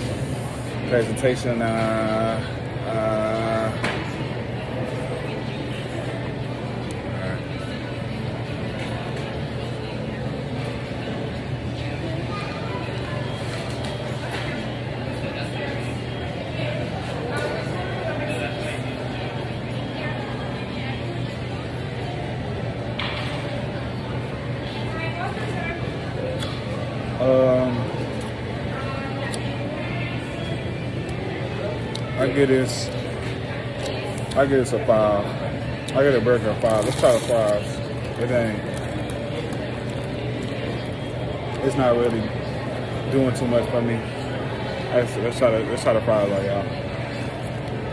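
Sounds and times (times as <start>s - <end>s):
distant diners chatting: 0.0s - 47.9s
murmur of voices: 0.0s - 47.9s.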